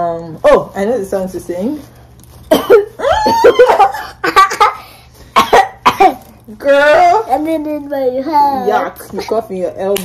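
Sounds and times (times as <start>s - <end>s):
girl coughing: 2.5s - 6.3s.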